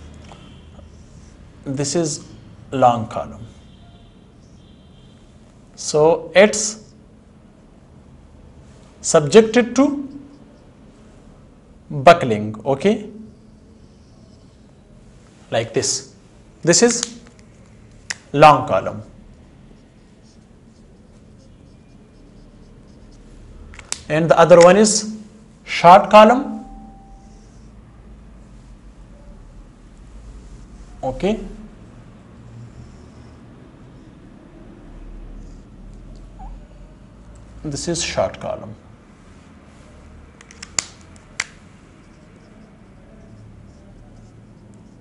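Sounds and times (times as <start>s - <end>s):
marker pen writing on whiteboard: 9.2s - 10.9s, 13.3s - 14.9s, 15.6s - 25.1s, 30.0s - 36.4s, 39.9s - 45.0s.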